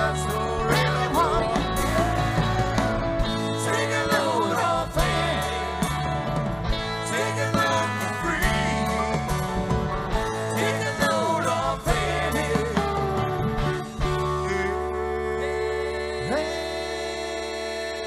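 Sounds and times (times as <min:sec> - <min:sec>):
drum kit: 0:00.0 - 0:15.2
bass guitar: 0:00.0 - 0:18.0
electric guitars: 0:00.0 - 0:18.0.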